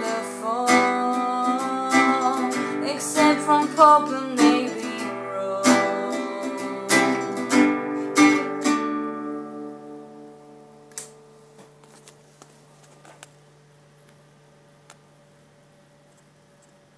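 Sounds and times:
acoustic guitar strumming: 0.0 - 11.6.

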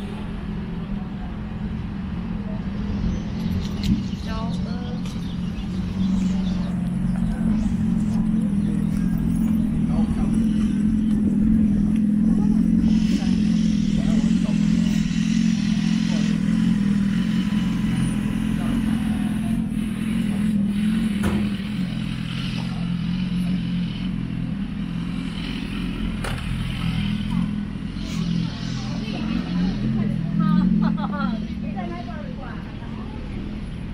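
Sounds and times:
low engine hum: 0.0 - 33.9
traffic passing: 0.0 - 33.9
voices in background: 0.0 - 33.9.

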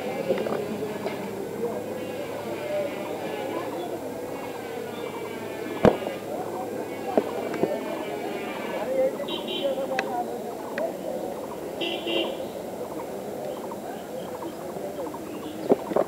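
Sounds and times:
indistinct voices talking: 0.0 - 16.0.

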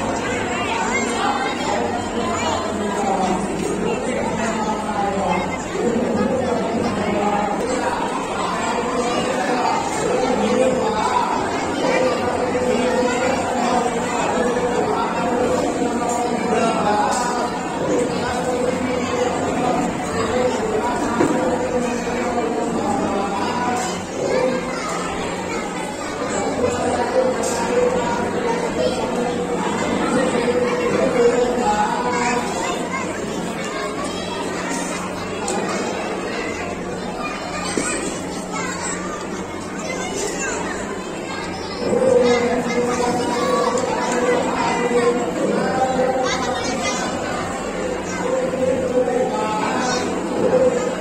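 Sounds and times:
people talking and chattering: 0.0 - 51.0.

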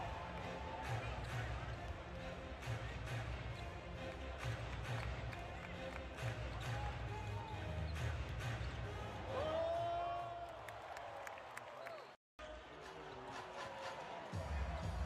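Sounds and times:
crowd chatter: 0.0 - 10.1, 12.4 - 15.0.

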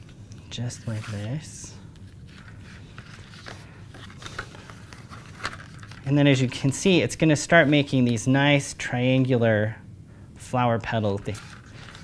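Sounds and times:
poster board folding crackles: 0.0 - 6.8, 11.2 - 12.0.

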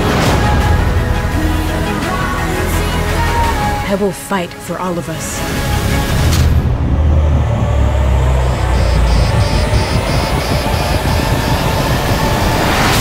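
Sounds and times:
dramatic score: 0.0 - 13.0
high pulsing beep: 7.9 - 13.0.

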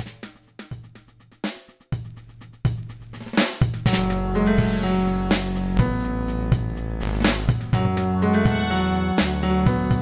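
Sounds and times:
breakbeat drum pattern: 0.0 - 10.0
low bass notes: 3.8 - 10.0.

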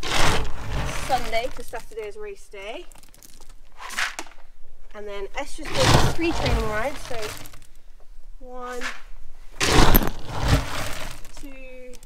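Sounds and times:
pellets pouring from scoop: 0.0 - 1.9, 5.6 - 7.7, 9.6 - 11.5.

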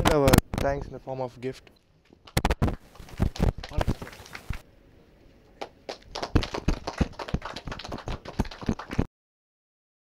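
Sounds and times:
small audience applauding: 2.3 - 4.6, 5.6 - 9.1.

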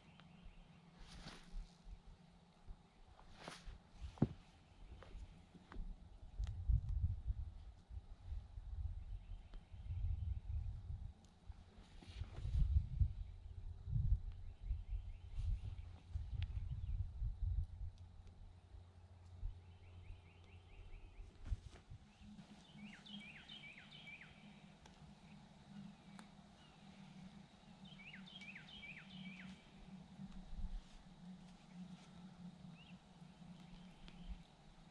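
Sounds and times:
steady low hum: 0.0 - 34.9
wind buffeting microphone: 4.0 - 18.0
small bird chirping: 22.0 - 30.3, 32.7 - 34.9.

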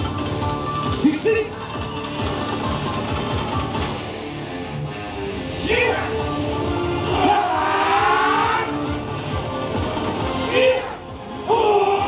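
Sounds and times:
loud shouted calls: 7.0 - 8.9, 10.4 - 12.0.

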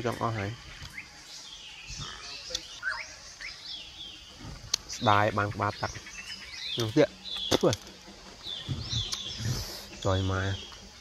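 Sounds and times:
birds chirping and calling: 0.0 - 11.0.

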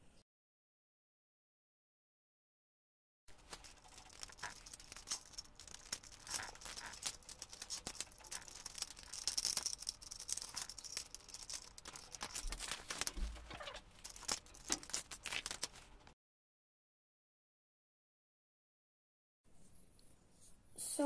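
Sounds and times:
plastic bricks clicking and rattling: 3.3 - 16.0.

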